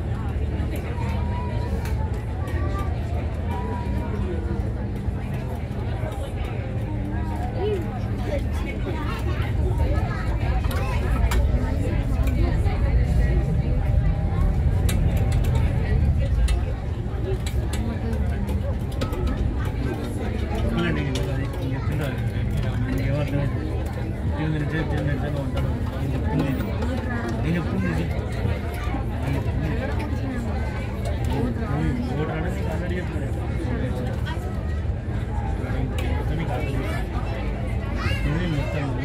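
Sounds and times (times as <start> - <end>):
boat engine rumble: 0.0 - 24.7
passengers talking indistinctly: 0.0 - 39.0.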